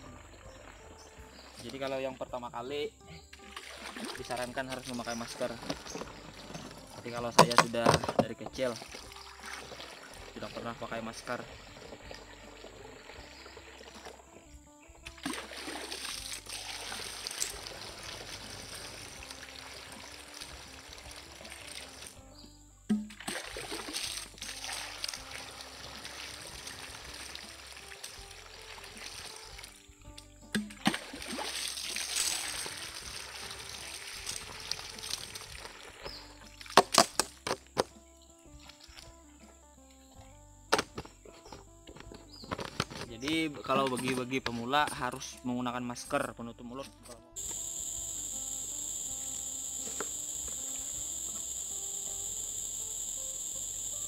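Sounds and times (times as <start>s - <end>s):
quiet background music: 0.0s - 54.0s
water pouring into plastic tank: 3.4s - 10.6s, 15.2s - 22.2s, 23.2s - 29.8s, 30.8s - 36.0s.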